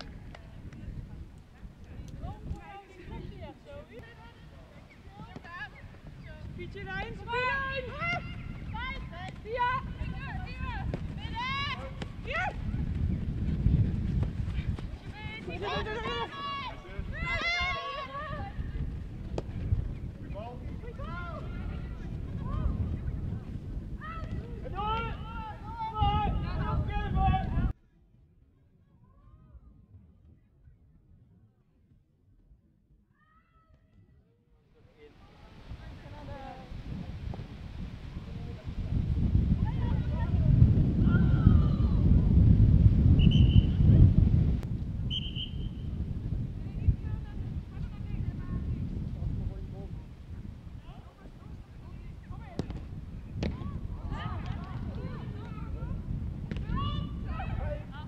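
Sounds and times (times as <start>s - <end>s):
wind buffeting microphone: 0.0s - 27.8s, 35.1s - 58.0s
referee's whistle blasts: 43.2s - 43.8s, 45.1s - 45.7s.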